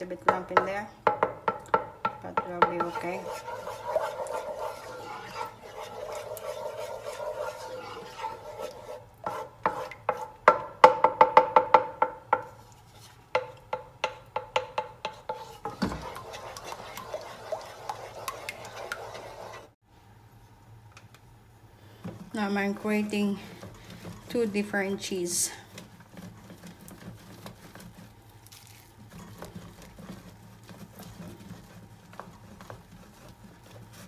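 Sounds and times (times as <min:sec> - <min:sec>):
spoon knocking against pan: 0:00.3 - 0:03.2, 0:09.6 - 0:12.5, 0:13.4 - 0:16.2
spoon stirring thick sauce: 0:00.3 - 0:10.4, 0:12.4 - 0:19.8, 0:22.2 - 0:34.0
spoon scraping a metal pan: 0:02.4 - 0:10.4, 0:15.0 - 0:19.8.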